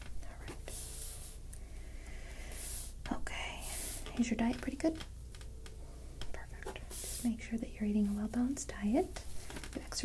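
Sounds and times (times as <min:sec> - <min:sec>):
person breathing: 0:00.7 - 0:04.1, 0:06.8 - 0:07.3.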